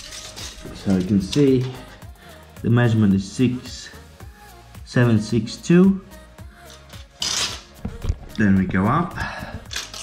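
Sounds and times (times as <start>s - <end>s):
tape measure scraping: 0.0s - 1.9s, 6.7s - 7.8s, 9.7s - 10.0s
faint background music: 0.0s - 10.0s.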